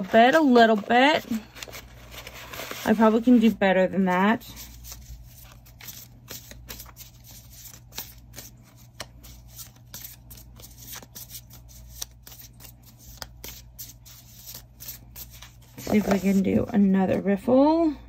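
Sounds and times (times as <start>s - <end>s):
cards shuffling and clicking: 4.5s - 16.5s.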